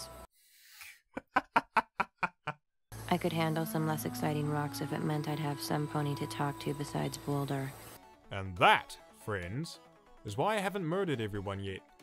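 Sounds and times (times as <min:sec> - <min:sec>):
staccato laugh: 0:01.1 - 0:02.6.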